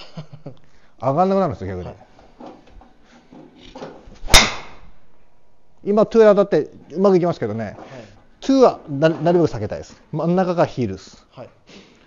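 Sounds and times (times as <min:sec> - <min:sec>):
golf driver striking ball: 0:04.2 - 0:05.0.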